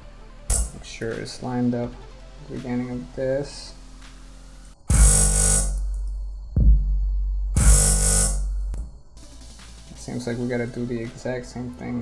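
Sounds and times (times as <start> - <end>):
bright synth stabs: 0.4 - 0.9, 4.9 - 6.0, 7.5 - 9.5
deep bass: 4.9 - 9.4.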